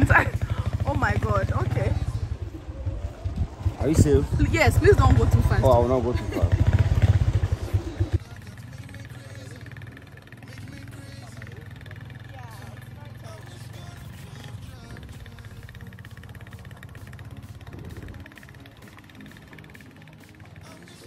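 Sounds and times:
motorcycle engine running: 0:00.0 - 0:21.0.

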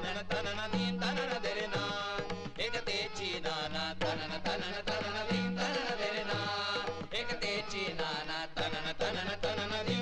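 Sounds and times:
rhythmic drum beats: 0:00.0 - 0:10.0
voices singing a chant-like song: 0:00.0 - 0:10.0.

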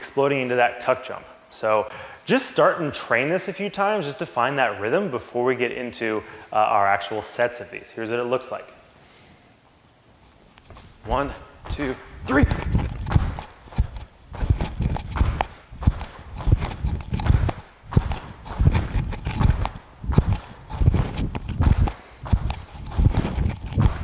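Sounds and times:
feet landing on gym floor: 0:10.7 - 0:24.0.

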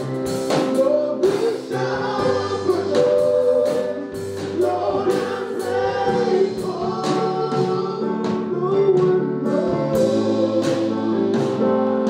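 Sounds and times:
group of voices singing: 0:00.0 - 0:12.0
sustained instrumental accompaniment: 0:00.0 - 0:12.0.

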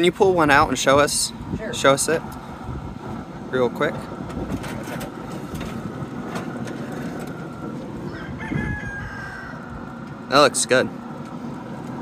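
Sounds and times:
steady low hum: 0:00.0 - 0:12.0
rooster crowing: 0:08.0 - 0:10.0.

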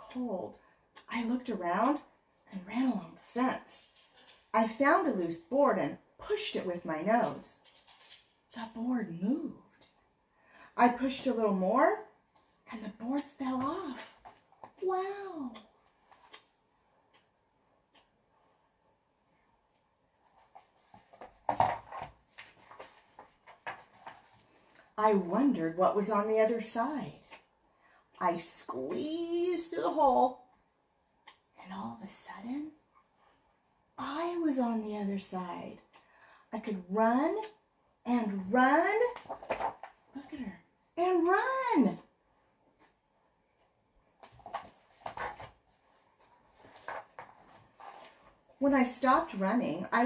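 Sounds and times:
book pages turning: 0:20.3 - 0:24.6, 0:46.3 - 0:48.4
paper and cover rustling: 0:20.3 - 0:24.7, 0:39.0 - 0:40.0, 0:44.2 - 0:48.4.

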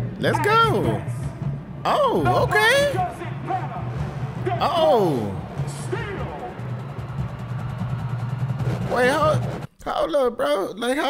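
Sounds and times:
drumline playing rapid strokes: 0:00.0 - 0:09.7
low band sound: 0:00.0 - 0:09.7.

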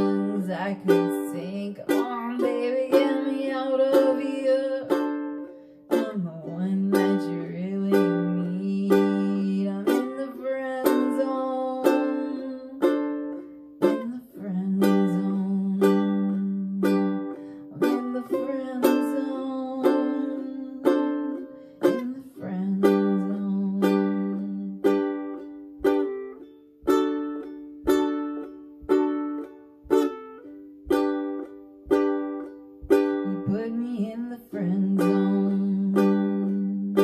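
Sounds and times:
ukulele strumming: 0:00.0 - 0:37.0.

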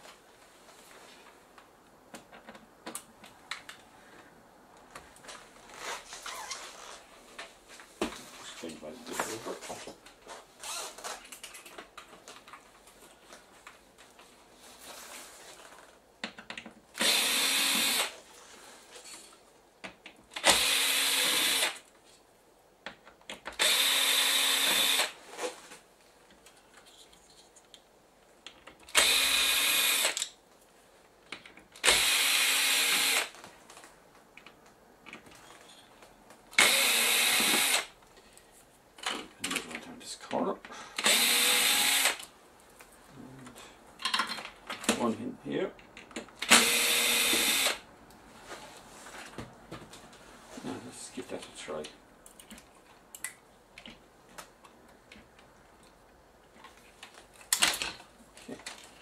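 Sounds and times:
cordless drill whining: 0:10.6 - 0:11.2, 0:17.0 - 0:18.2, 0:20.4 - 0:21.8, 0:23.6 - 0:25.2, 0:28.9 - 0:30.2, 0:31.8 - 0:33.3, 0:36.6 - 0:37.9, 0:41.0 - 0:42.3, 0:46.4 - 0:47.8.

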